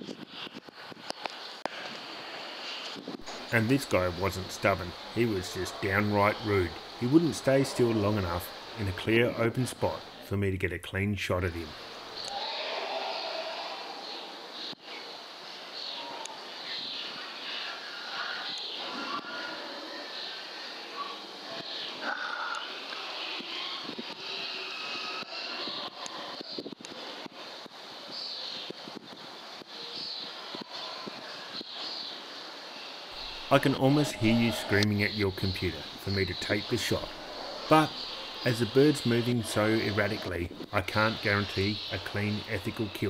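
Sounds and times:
steady hiss: 0.0 - 43.0
small birds chirping: 11.7 - 27.1, 27.8 - 43.0.

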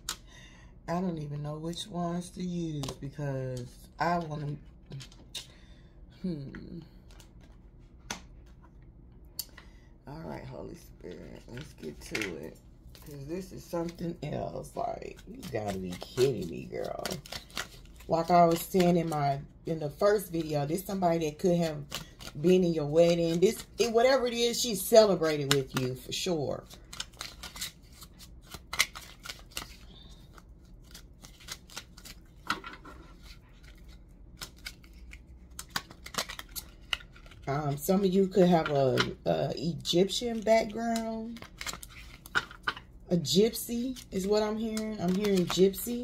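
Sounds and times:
cards being shuffled: 11.3 - 19.2, 19.8 - 37.8, 39.8 - 42.9, 43.9 - 46.0.

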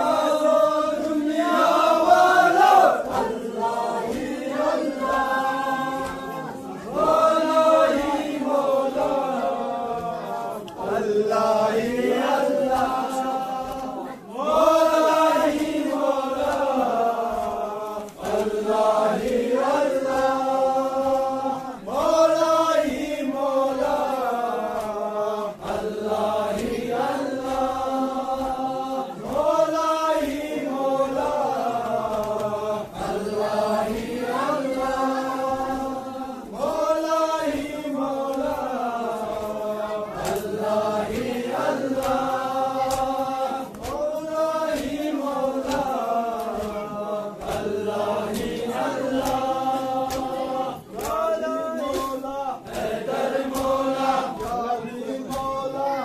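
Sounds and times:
men chanting a mourning lament: 0.0 - 56.0.

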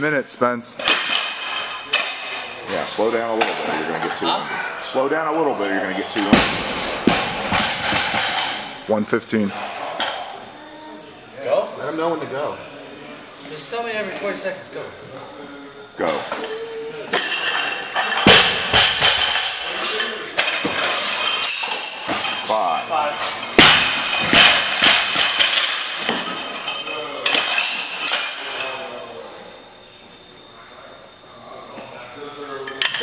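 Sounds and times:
barbell crashing onto platform: 6.2 - 8.6, 18.2 - 19.6, 23.6 - 26.3.

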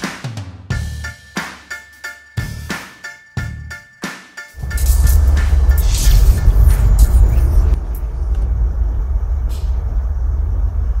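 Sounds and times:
deep rumble: 4.6 - 11.0
whooshing sweeps: 4.6 - 11.0.

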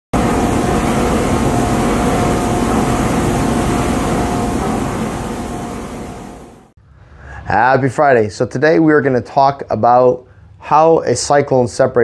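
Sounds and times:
machine blowers rushing: 0.1 - 6.7
thin high whine: 0.1 - 6.7.

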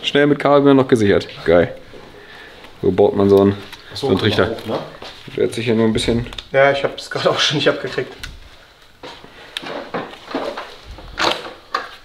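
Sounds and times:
rubber hose rustling: 1.2 - 6.6, 8.1 - 12.0.

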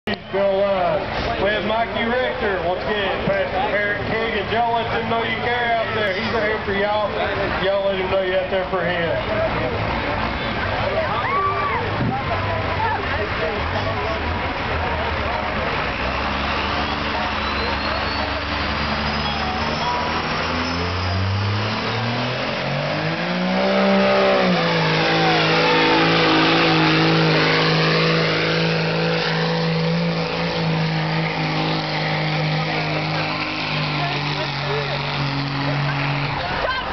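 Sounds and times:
diesel truck engine revving: 11.8 - 36.9.

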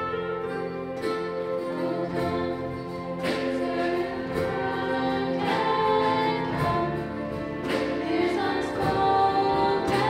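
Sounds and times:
small band playing worship song: 0.0 - 10.0
many voices singing: 1.5 - 10.0.

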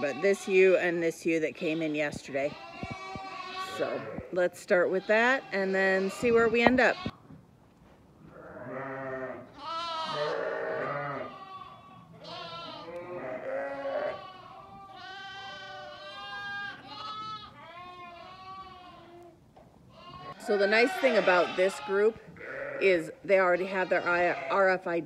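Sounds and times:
lambs bleating: 0.0 - 1.0, 1.6 - 7.2, 8.4 - 19.3, 19.9 - 24.9.

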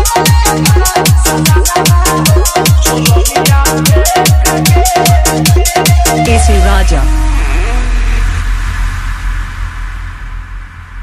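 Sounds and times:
person singing: 0.0 - 8.4
deep bass drone: 6.1 - 11.0.

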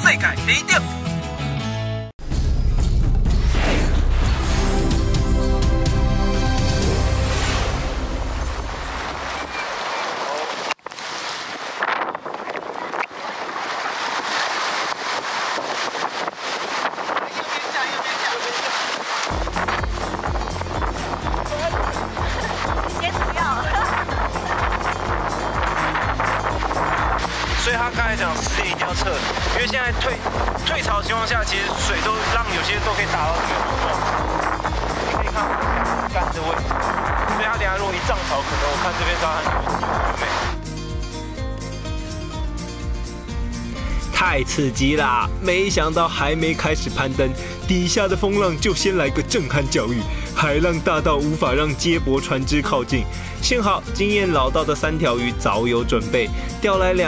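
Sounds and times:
breaking surf and splashing water: 6.2 - 40.6
music with steady bass beat: 19.3 - 46.0.

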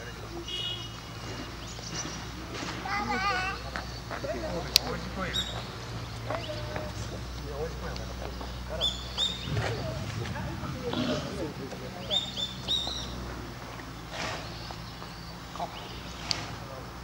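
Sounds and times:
murmur of people talking: 0.0 - 17.0
high bird chirps: 8.2 - 10.3, 12.0 - 13.3.

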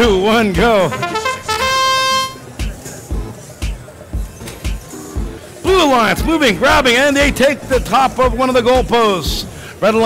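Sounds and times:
background music with a beat: 0.0 - 9.6
horn steady tone: 0.8 - 3.4.

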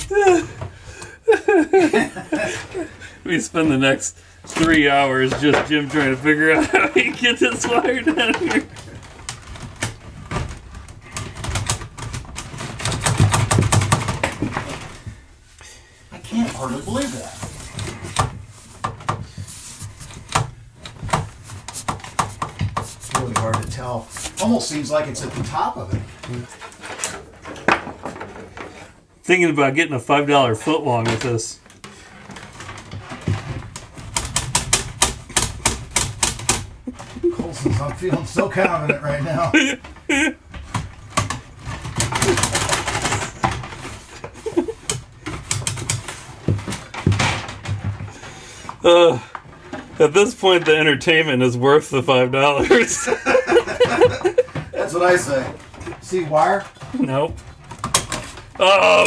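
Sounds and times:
wire clicking and scraping in conduit: 4.4 - 29.0, 30.6 - 50.9.

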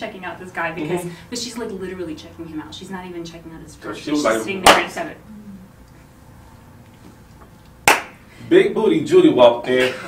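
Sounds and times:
sharp hand clap: 7.8 - 8.2.

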